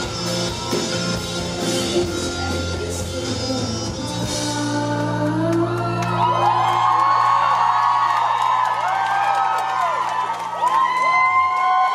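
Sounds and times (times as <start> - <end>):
concert crowd cheering and screaming: 0.0 - 3.3, 5.5 - 11.9.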